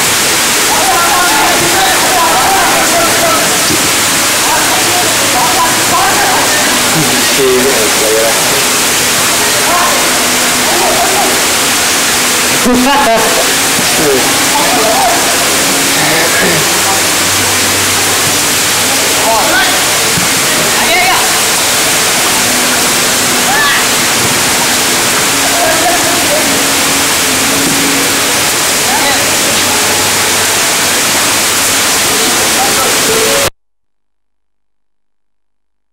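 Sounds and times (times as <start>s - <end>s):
heavy rain pouring: 0.0s - 33.5s
distant shouts and voices: 0.1s - 33.5s.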